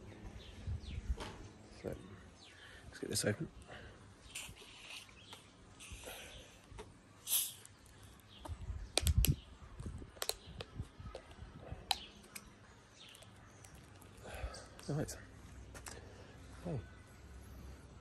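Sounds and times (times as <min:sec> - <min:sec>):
soda bottle hissing: 0:07.2 - 0:07.7.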